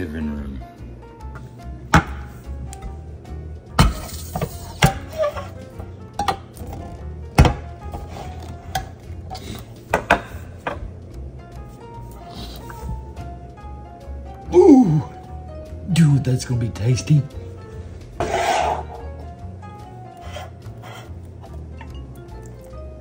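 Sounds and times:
background music: 0:00.0 - 0:23.0
knife stabbing metal can lid: 0:03.8 - 0:05.5.

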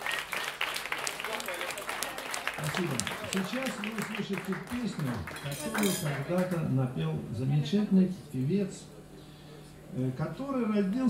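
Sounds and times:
cutlery and dishes clinking: 0:05.4 - 0:06.2.

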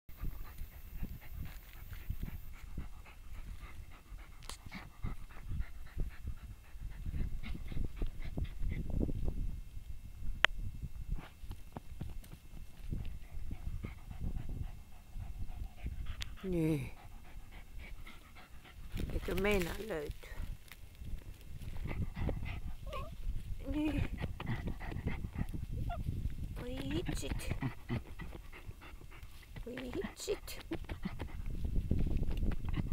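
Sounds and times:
dog panting and snuffling: 0:00.1 - 0:08.9, 0:11.1 - 0:20.5, 0:21.6 - 0:32.9
paws scraping earth: 0:00.2 - 0:09.2, 0:11.1 - 0:32.9
grass stalks rustling: 0:18.8 - 0:21.9
dog whimpering: 0:22.8 - 0:23.2.

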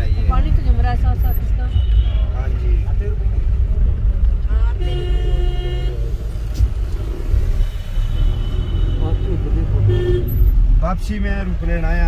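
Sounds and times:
car engine and road noise: 0:00.0 - 0:12.0
vehicle horn: 0:04.8 - 0:06.1, 0:07.5 - 0:10.5.

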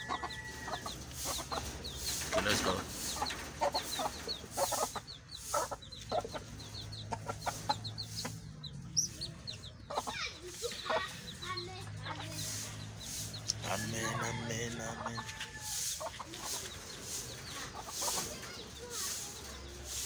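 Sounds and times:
chickens clucking: 0:00.0 - 0:20.0.

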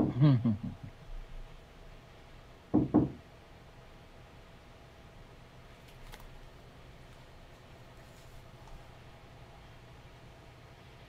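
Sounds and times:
knocks on a door: 0:02.7 - 0:03.2.

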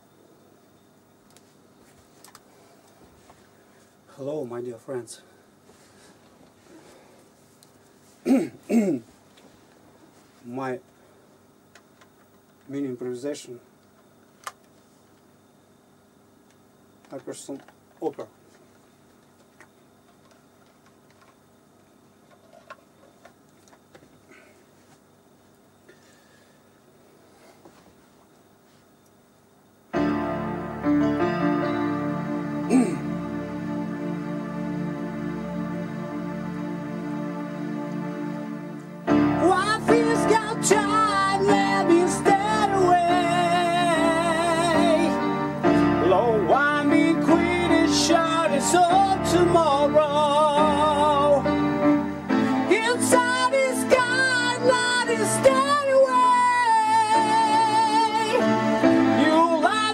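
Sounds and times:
faint steady hum: 0:00.0 - 0:59.9
electronic keyboard chords: 0:29.9 - 0:59.9
man singing operatically: 0:46.0 - 0:51.5, 0:52.7 - 0:58.4.

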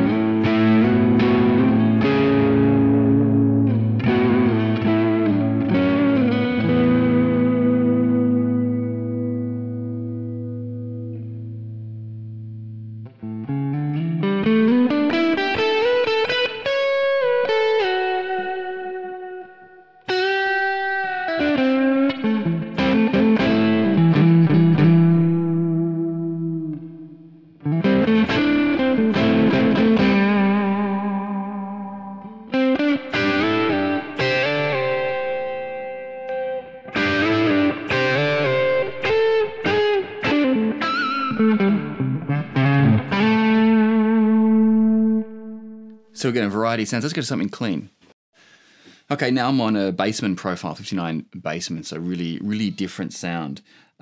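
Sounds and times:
electric guitar playing: 0:00.0 - 0:46.2.

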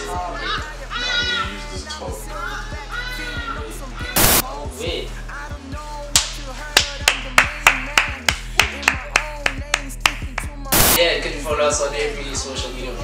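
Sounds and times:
background music with low bass: 0:00.0 - 0:13.0
sharp claps: 0:06.2 - 0:11.0
loud noise burst: 0:10.7 - 0:11.0.

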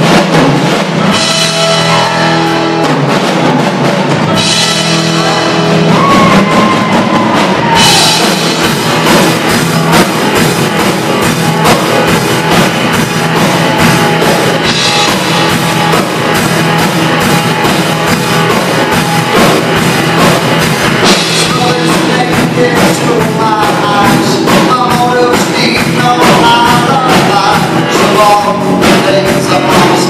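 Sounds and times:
drum kit beat: 0:00.0 - 0:30.0
live rock band playing: 0:00.0 - 0:30.0.

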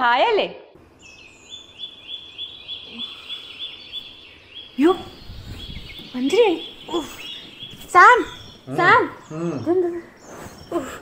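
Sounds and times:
woman speaking: 0:06.1 - 0:07.2, 0:08.0 - 0:10.1.

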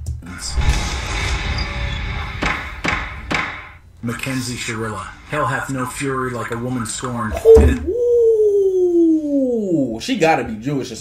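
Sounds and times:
low rumbling hissing swell: 0:00.3 - 0:07.4
sharp knocks: 0:02.4 - 0:03.8.

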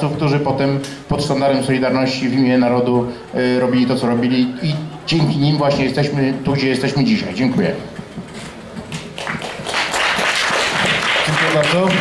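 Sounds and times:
audience applauding: 0:08.9 - 0:12.0.

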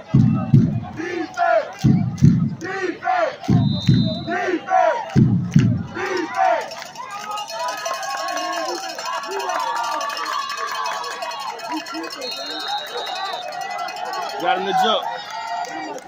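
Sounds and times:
crowd chanting: 0:00.0 - 0:16.0
crowd shouting and cheering: 0:00.0 - 0:16.0.

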